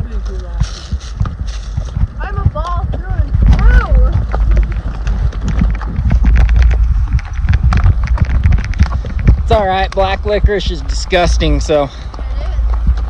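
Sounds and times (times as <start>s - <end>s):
horse hooves clopping on dirt: 0.0s - 13.0s
low microphone rumble: 0.0s - 13.0s.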